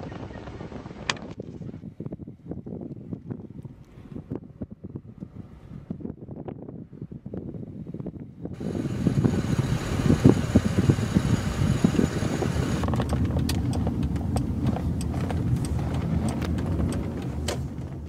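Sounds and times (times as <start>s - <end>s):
wind buffeting microphone: 0.0s - 18.0s
road rumble in car cabin: 1.1s - 18.0s.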